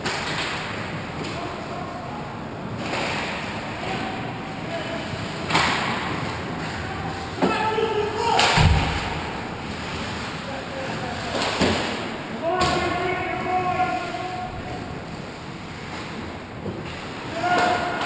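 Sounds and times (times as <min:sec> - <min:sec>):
players shouting: 0:06.2 - 0:09.5, 0:12.4 - 0:15.1, 0:17.2 - 0:18.0.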